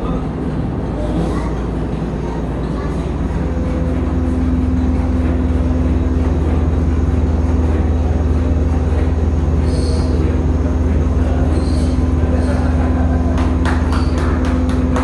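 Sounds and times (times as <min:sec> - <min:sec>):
steady hum: 0:00.0 - 0:15.0
steam engine rumbling: 0:00.0 - 0:15.0.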